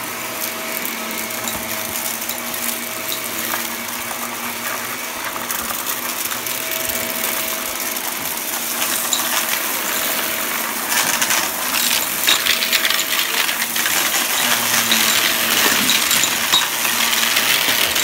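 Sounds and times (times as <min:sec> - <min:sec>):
debris clattering through vacuum: 0:00.0 - 0:18.0
vacuum cleaner motor hum: 0:00.0 - 0:18.0.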